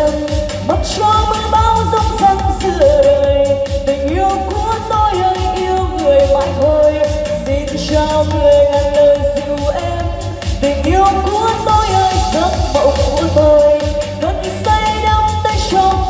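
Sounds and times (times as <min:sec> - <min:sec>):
electronic pop backing track: 0:00.0 - 0:16.0
pulsing bass beat: 0:00.0 - 0:16.0
woman singing into a microphone: 0:00.0 - 0:16.0.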